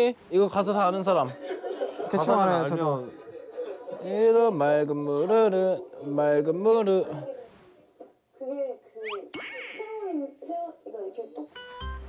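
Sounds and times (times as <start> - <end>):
bright ringing ding: 9.4 - 9.9.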